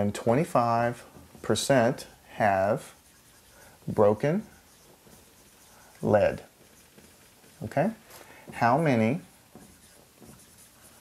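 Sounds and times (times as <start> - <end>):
marker scratching on whiteboard: 0.6 - 11.0.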